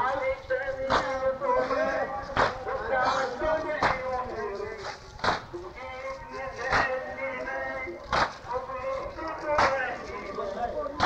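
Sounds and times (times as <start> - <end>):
voices chanting a lament: 0.0 - 11.0
unison chest-beating strikes: 0.8 - 1.3, 2.3 - 4.1, 5.2 - 5.6, 8.1 - 8.5.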